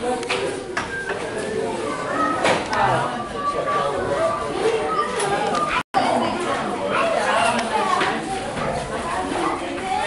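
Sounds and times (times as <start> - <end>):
chatter of adults and children: 0.0 - 10.0.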